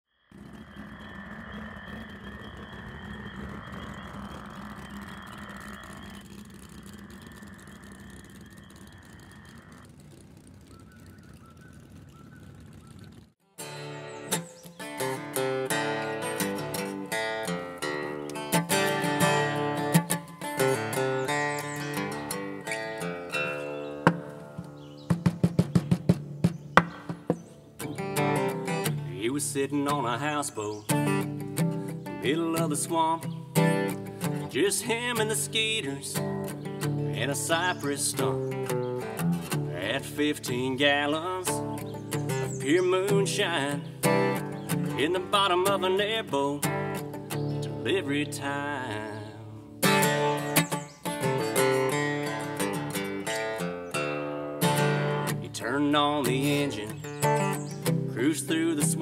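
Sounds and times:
bird chirps: 0:00.1 - 0:59.0
acoustic guitar playing: 0:13.4 - 0:59.0.

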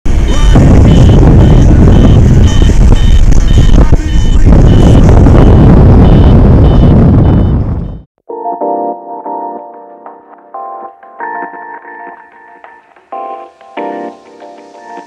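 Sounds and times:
wind rushing over microphone: 0:00.1 - 0:08.1
variometer beeping: 0:00.4 - 0:08.0.

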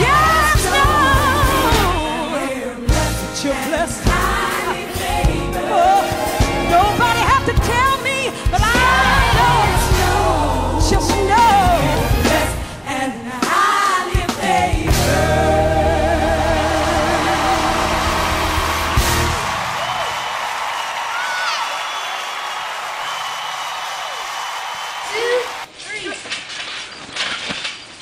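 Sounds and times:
gospel song with band: 0:00.0 - 0:20.9.

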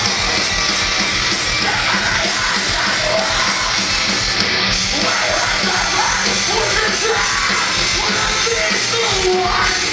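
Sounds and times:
heavy metal band playing: 0:00.0 - 0:09.9
yelled vocals: 0:00.0 - 0:09.9.

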